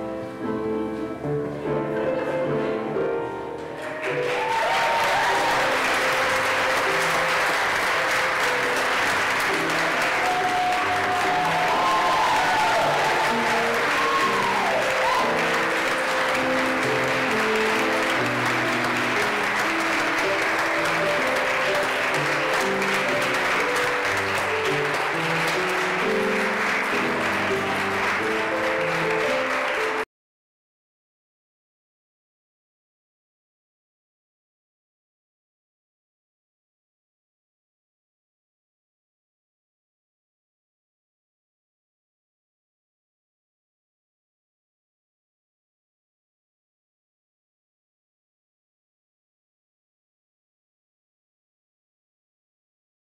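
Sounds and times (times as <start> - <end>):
piano music: 0.0 - 30.1
congregation applauding: 3.7 - 30.1
people whooping: 4.1 - 7.3, 9.7 - 16.4.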